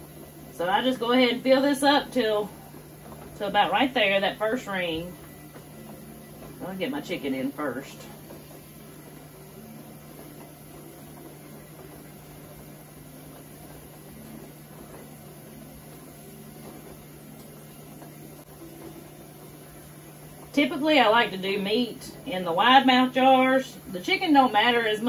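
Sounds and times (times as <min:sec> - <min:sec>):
kitchen appliance humming: 0:00.0 - 0:25.0.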